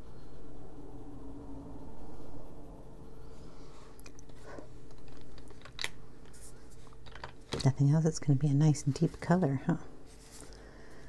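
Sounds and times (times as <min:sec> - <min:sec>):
wooden pencils clicking together: 0:04.0 - 0:07.7.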